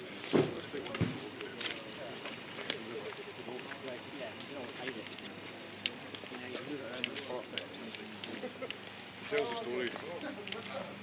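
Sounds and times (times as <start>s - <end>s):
people talking indistinctly: 0.0s - 11.0s
footsteps on paving: 0.4s - 2.4s.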